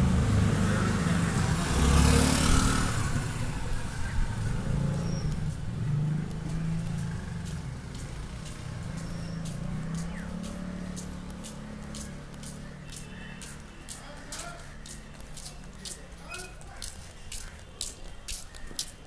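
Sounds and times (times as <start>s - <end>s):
vehicle engine rumble: 0.0s - 19.0s.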